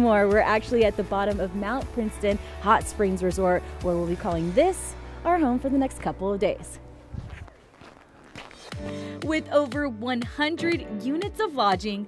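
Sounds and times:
footsteps in snow: 6.6 - 9.1.

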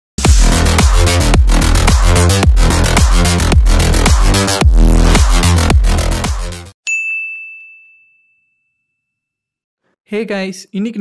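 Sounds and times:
electronic dance music: 0.2 - 6.7
bright ding chime: 6.8 - 9.3.

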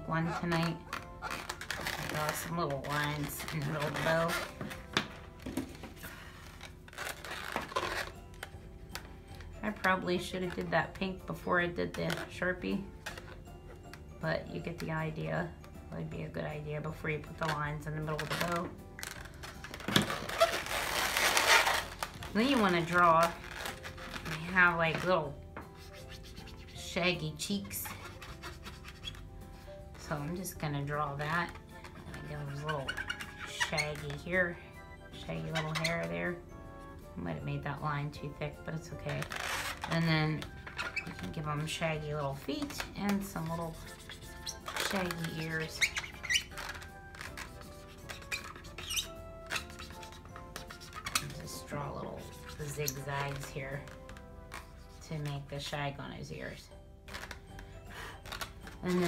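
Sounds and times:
balloon rubbing and squeaking: 0.0 - 8.6, 9.8 - 13.8, 17.3 - 36.4, 38.9 - 55.6, 56.4 - 59.0.

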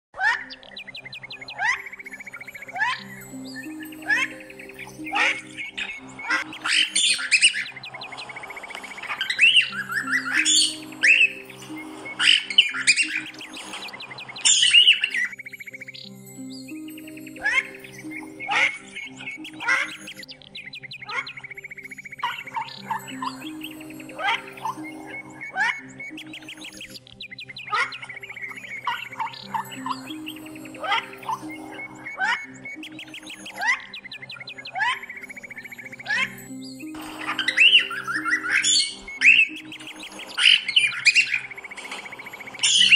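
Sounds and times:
soft background music: 0.2 - 42.9
cockatiel chirping and squawking: 4.0 - 15.3, 37.0 - 42.9.

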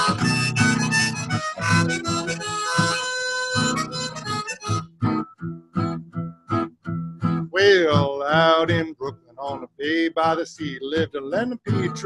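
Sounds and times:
acoustic guitar strumming: 0.0 - 12.0.

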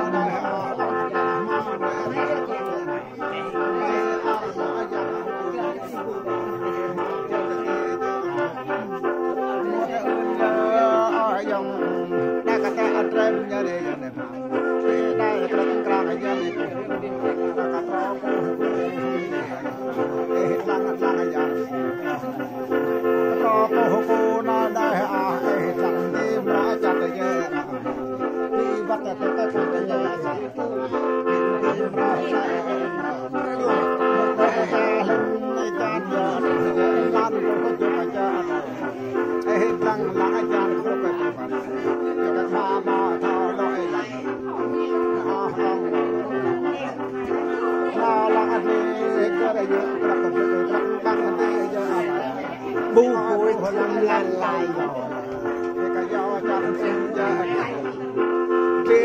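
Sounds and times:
mouth organ drone and melody: 0.0 - 59.0.

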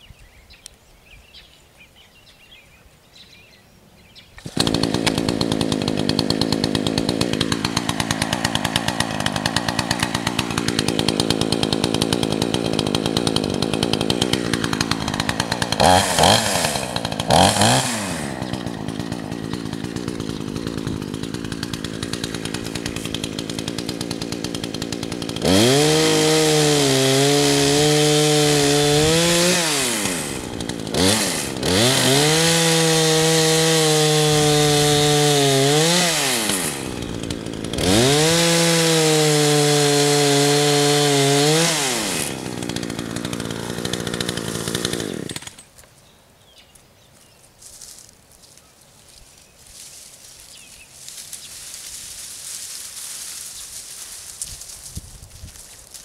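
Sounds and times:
chainsaw cutting saplings: 4.3 - 46.0, 47.3 - 56.0
chainsaw idling and revving: 4.4 - 45.8, 49.8 - 56.0.

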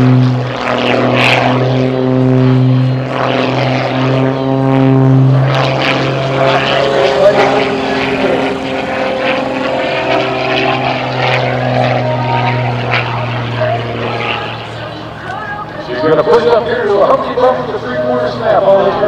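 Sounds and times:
propeller plane engine drone: 0.0 - 19.0.

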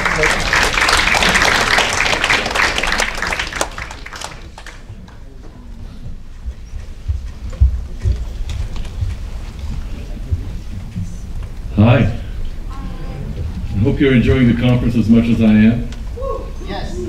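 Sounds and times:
audience applause: 0.0 - 5.4
low thumps: 6.0 - 16.3.

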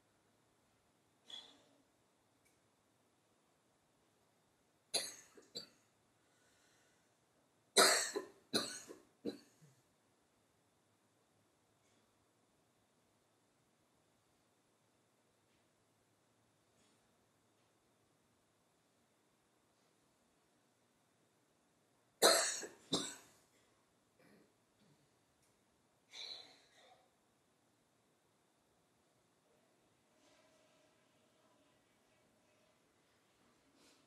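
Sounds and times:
person coughing: 7.8 - 9.5, 22.2 - 23.3.

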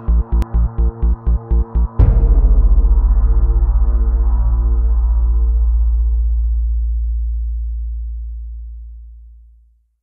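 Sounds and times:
deep low gong-like tone: 2.0 - 9.4.

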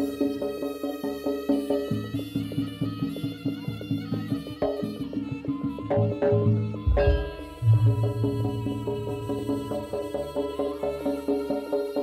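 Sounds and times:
reedy wind melody: 6.8 - 10.6
drum and gong-chime strokes: 6.8 - 11.0.

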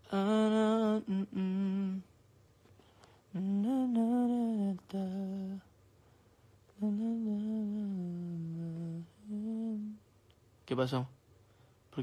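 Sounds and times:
man humming a slow tune: 0.0 - 2.1, 3.3 - 5.7, 6.8 - 10.0.

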